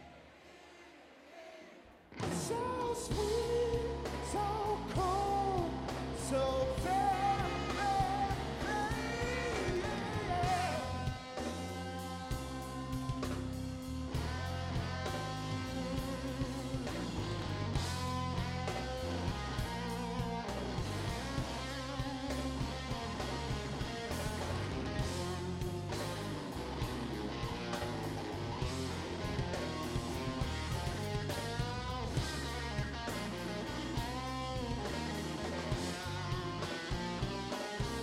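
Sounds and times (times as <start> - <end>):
bass and drums: 2.2 - 38.0
electric guitar solo: 6.6 - 38.0.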